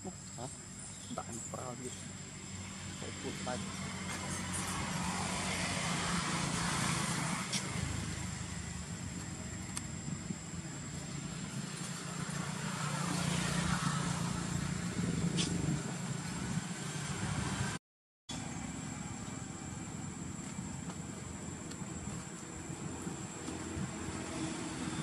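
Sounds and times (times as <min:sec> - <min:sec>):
vehicle engine humming: 0:00.0 - 0:25.0.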